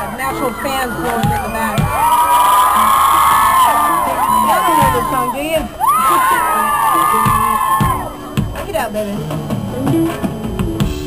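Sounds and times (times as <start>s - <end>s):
live pop band playing: 0.0s - 11.0s.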